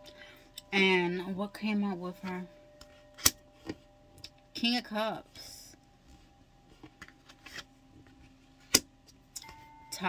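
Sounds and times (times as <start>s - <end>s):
faint steady background tones: 0.0s - 10.0s.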